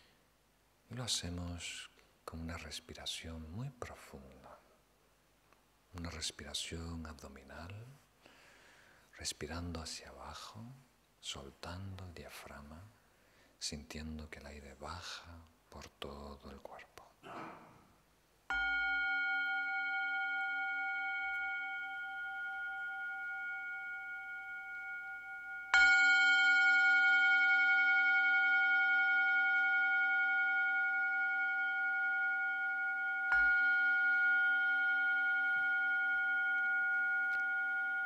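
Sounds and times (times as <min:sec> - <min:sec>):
singing bowl ringing: 0:18.5 - 0:38.0.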